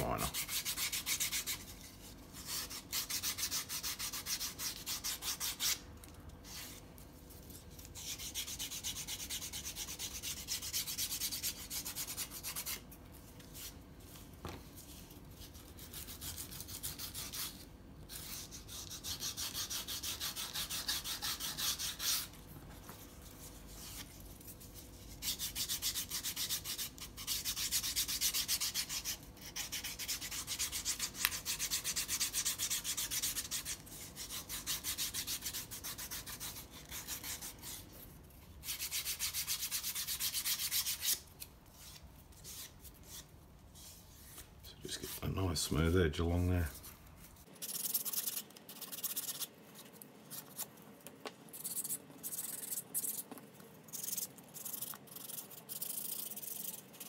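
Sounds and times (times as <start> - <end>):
sanding stick rubbing leather: 0.2 - 5.8, 7.9 - 12.9, 15.5 - 22.3, 23.3 - 37.9, 38.6 - 44.4, 47.6 - 49.5.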